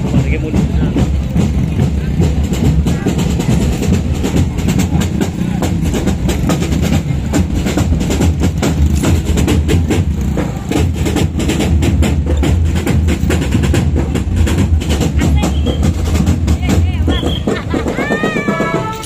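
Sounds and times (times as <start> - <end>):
marching band drums beating: 0.0 - 19.0.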